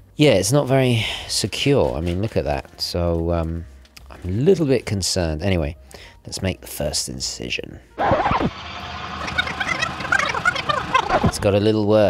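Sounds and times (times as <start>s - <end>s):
sped-up chattering blips: 9.1s - 11.2s.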